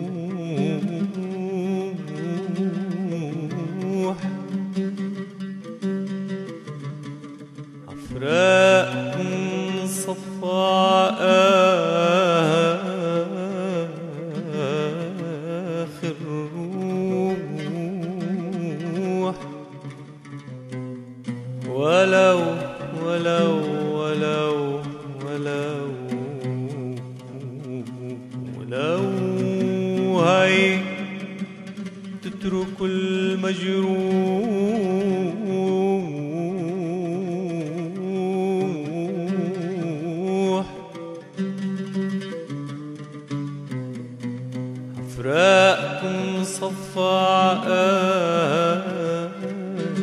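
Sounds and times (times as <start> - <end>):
man singing melismatic notes: 0.0 - 4.8, 7.9 - 20.2, 21.6 - 41.4, 45.0 - 50.0.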